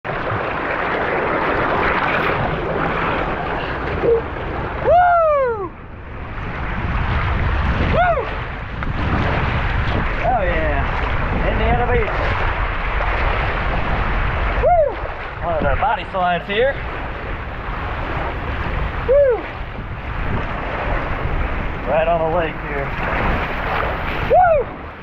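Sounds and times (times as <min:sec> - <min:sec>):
water rushing down slide: 0:00.0 - 0:25.0
person whooping: 0:04.0 - 0:05.8, 0:07.9 - 0:08.4, 0:14.6 - 0:15.0, 0:19.0 - 0:19.5, 0:24.3 - 0:24.8.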